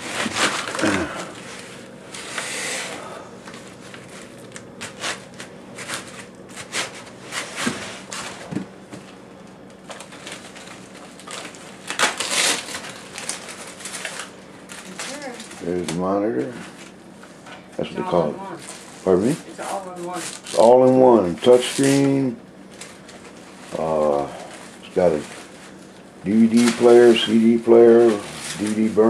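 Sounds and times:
plastic bag crinkling: 0.0s - 1.9s, 9.8s - 16.0s, 18.5s - 29.0s
foam packing scraping: 0.0s - 3.0s, 10.0s - 15.6s, 26.3s - 29.0s.

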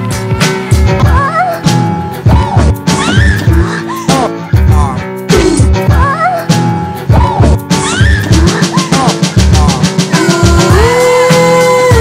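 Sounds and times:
drum and bass beat: 0.0s - 12.0s.

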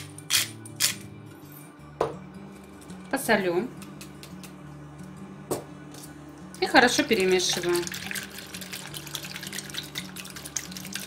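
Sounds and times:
pepper mill grinding: 0.0s - 1.1s, 7.2s - 11.0s.

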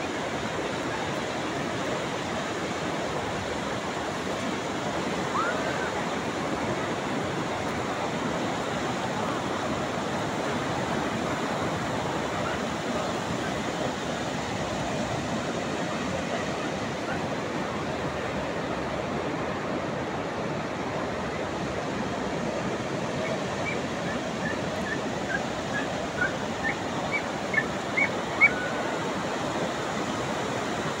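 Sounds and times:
sea surf on a beach: 0.0s - 31.0s.

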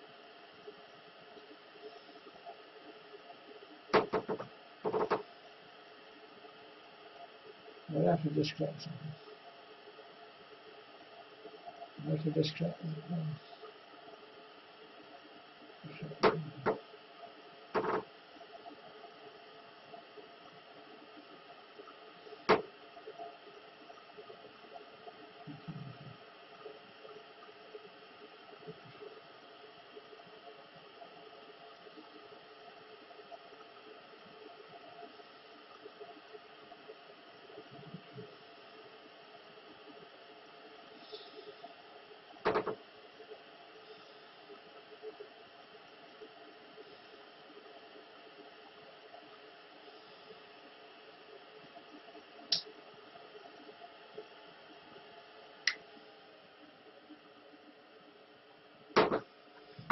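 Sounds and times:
faint background hiss: 0.0s - 59.9s.

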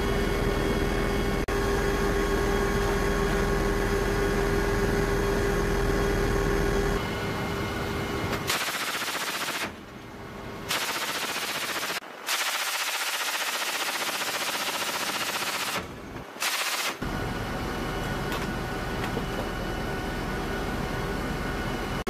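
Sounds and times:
aircraft engine and rotor drone: 0.0s - 22.0s
heavy machine gun bursts: 8.5s - 9.8s, 10.7s - 17.0s.

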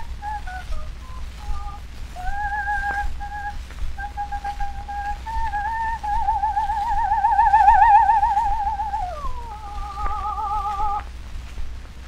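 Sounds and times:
soprano singing an aria: 0.0s - 11.0s.

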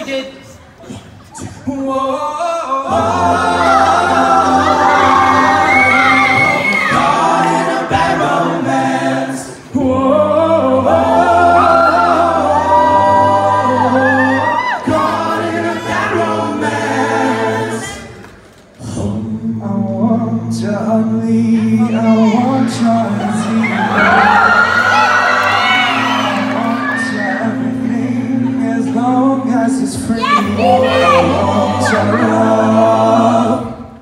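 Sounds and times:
male a cappella group singing: 0.9s - 18.2s, 18.8s - 34.0s.

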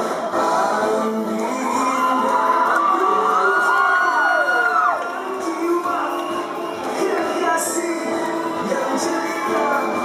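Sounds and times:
pop band playing: 0.0s - 10.0s
audience whoops: 1.4s - 7.4s, 8.5s - 10.0s.

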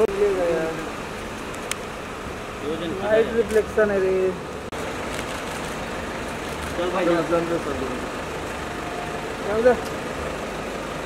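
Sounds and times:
car engine idling: 0.0s - 11.0s
street background noise: 0.0s - 11.0s.

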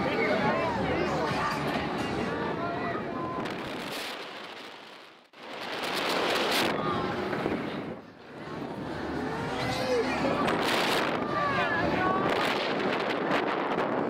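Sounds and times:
wind rushing over microphone: 2.1s - 14.0s.

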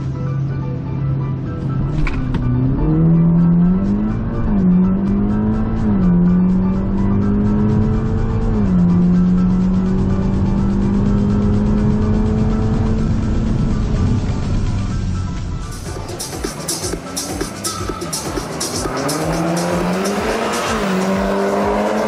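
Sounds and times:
car engine at full throttle: 0.0s - 22.0s.

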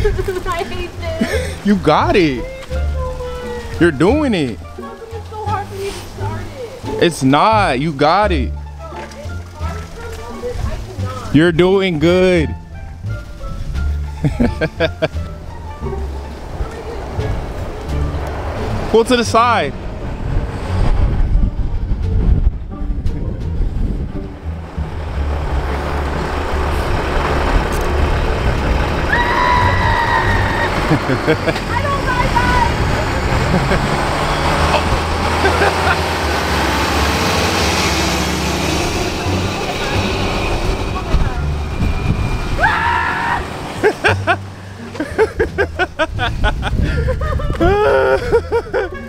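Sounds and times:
vehicle passing by: 0.0s - 49.0s
low rumble: 8.4s - 49.0s.

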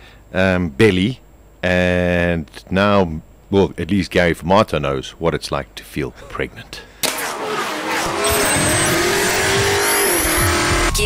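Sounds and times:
racing car engine at high revs: 7.0s - 11.0s.

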